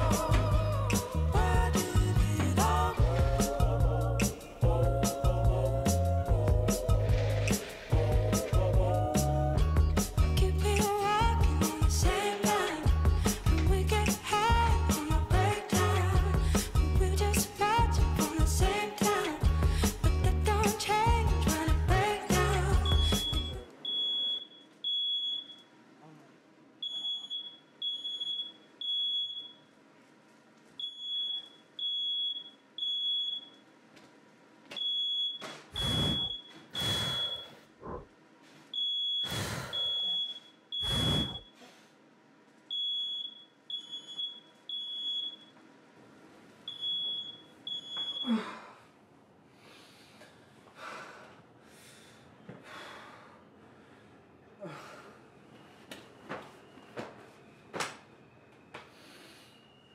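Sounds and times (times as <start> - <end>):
smoke alarm beeping: 22.8 - 25.7, 26.8 - 29.7, 30.8 - 33.6, 34.7 - 37.6, 38.7 - 41.6, 42.7 - 45.6, 46.7 - 48.3.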